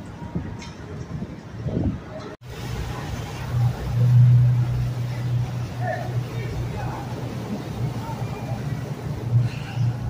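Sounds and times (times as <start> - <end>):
boat engine drone: 2.4 - 10.0.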